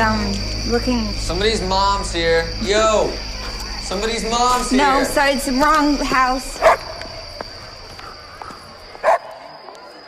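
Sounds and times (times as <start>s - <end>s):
steady high-pitched tone: 0.0s - 10.0s
dog barking: 6.6s - 6.9s, 9.0s - 9.4s.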